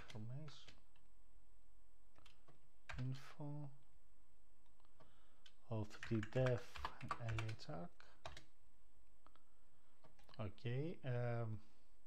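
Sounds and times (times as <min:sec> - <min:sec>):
low room hiss: 0:00.0 - 0:12.0
keyboard keys clicking: 0:06.0 - 0:07.6.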